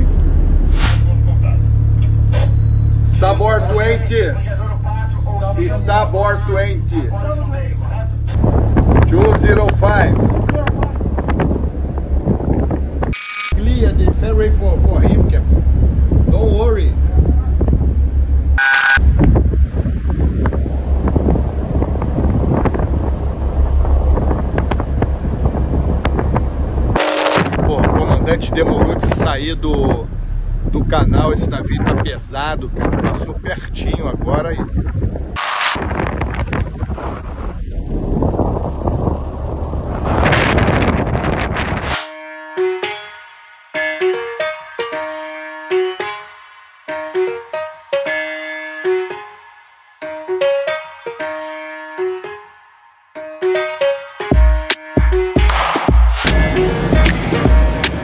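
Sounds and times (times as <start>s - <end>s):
steady low hum: 0.0s - 41.7s
ship engine rumbling: 0.0s - 42.0s, 54.4s - 58.0s
brief steady tones: 2.3s - 3.1s, 18.6s - 19.0s, 27.0s - 27.6s
wind buffeting microphone: 8.3s - 42.0s.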